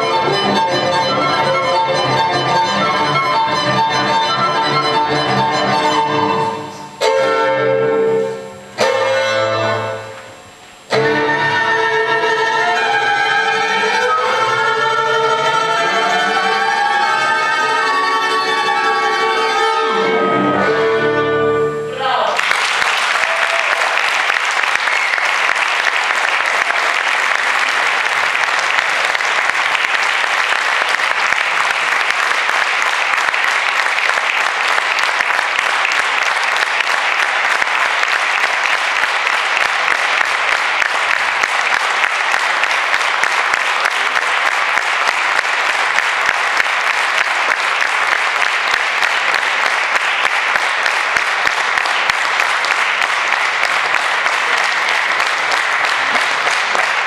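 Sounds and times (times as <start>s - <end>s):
audience applauding: 22.2s - 57.0s.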